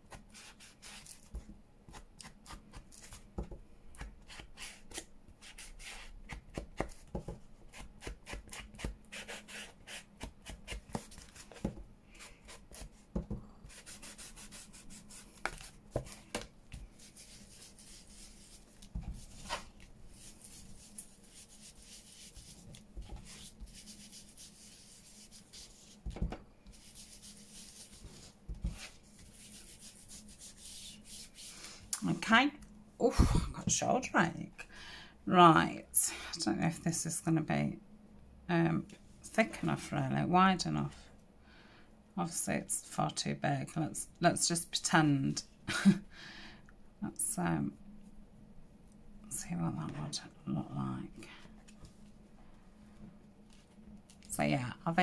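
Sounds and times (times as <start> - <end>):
ink tool scratching on paper: 20.2 - 26.0.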